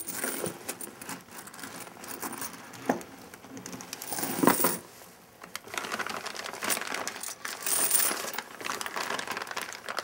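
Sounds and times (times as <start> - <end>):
crinkling and rustling: 0.0 - 10.0.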